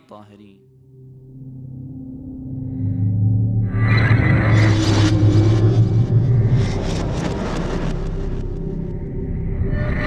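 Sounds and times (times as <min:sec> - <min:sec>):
deep rumbling drone: 0:00.9 - 0:10.0.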